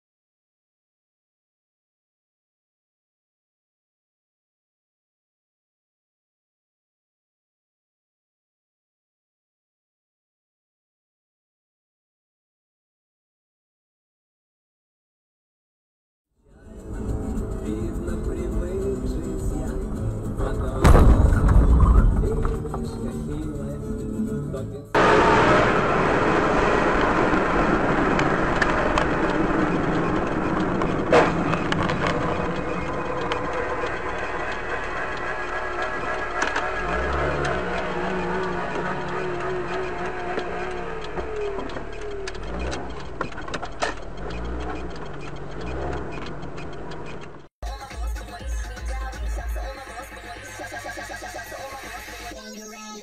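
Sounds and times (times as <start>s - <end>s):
music playing: 16.5s - 25.0s, 47.6s - 53.0s
road and engine noise: 16.5s - 47.6s.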